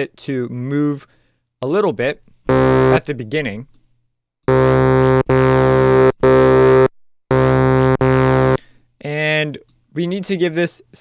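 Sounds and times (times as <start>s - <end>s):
synthesizer bass note: 2.5s - 3.4s, 4.5s - 8.6s.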